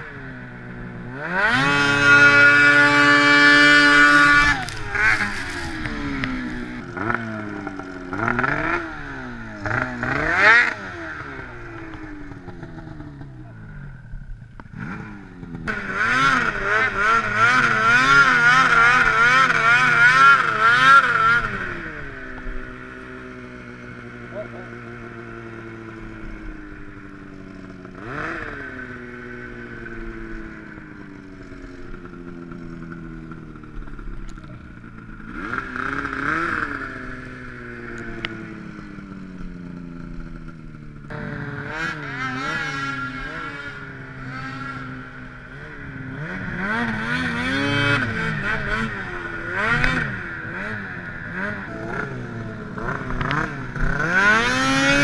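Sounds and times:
snowmobile engine revving: 0:00.0 - 0:55.0.

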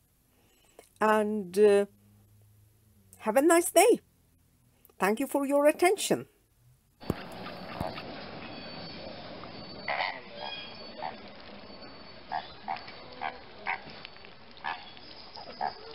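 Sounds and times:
flamingos honking: 0:07.0 - 0:15.9.

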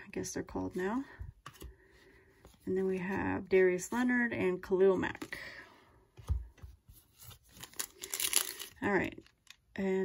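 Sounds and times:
wrapper crinkling: 0:07.4 - 0:09.6.

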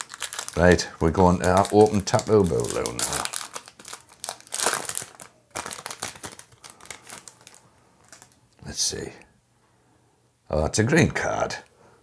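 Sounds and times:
foil wrapper crinkling: 0:00.0 - 0:08.4.

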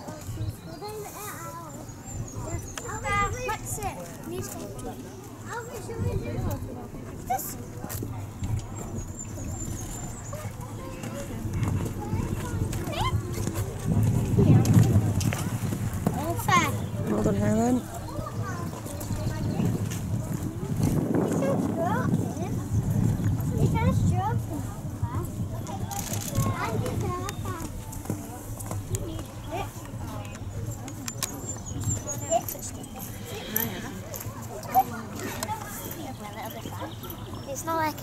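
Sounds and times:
indistinct chatter of onlookers: 0:00.0 - 0:38.0.

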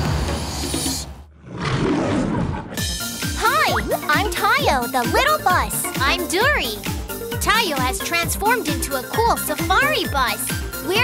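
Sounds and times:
bright children's music: 0:02.9 - 0:11.0.

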